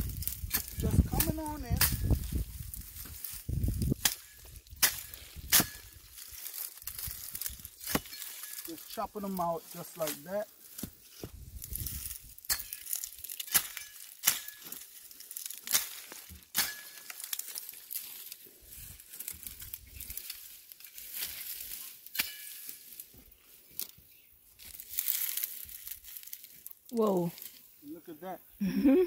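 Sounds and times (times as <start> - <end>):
brittle stems snapping: 0.0 - 8.8, 10.1 - 18.4, 19.1 - 23.1, 23.7 - 24.0, 24.6 - 27.6
dry ferns crackling and rustling: 0.0 - 28.4.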